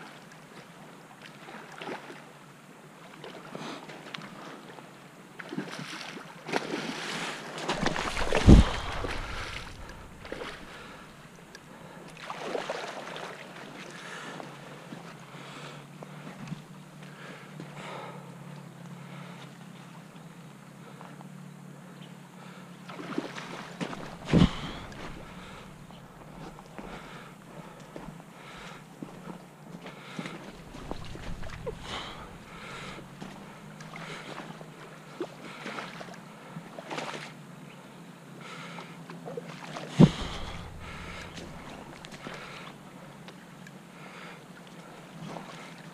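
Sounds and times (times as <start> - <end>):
creek water running: 5.4 - 21.5, 22.4 - 37.6, 38.2 - 45.9
wind buffeting microphone: 7.7 - 11.5, 24.0 - 27.0, 30.6 - 33.7, 40.0 - 42.7.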